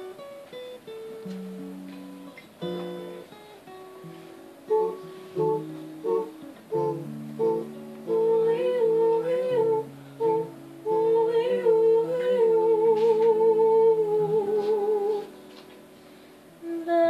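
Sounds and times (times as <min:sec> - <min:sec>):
acoustic guitar: 0:00.0 - 0:17.0
woman humming: 0:04.7 - 0:15.3.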